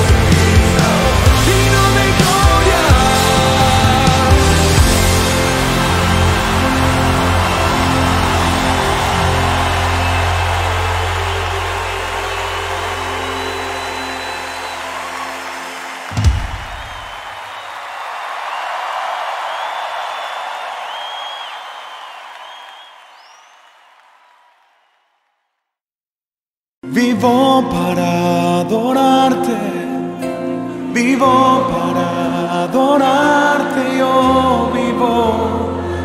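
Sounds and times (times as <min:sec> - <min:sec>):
live band playing: 0:00.0 - 0:17.2
audience cheering and applauding: 0:00.0 - 0:25.3.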